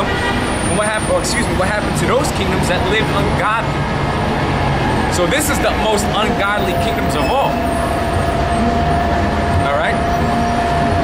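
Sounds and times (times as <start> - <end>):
city street traffic rumble: 0.0 - 11.0
continuous high whine: 0.0 - 11.0.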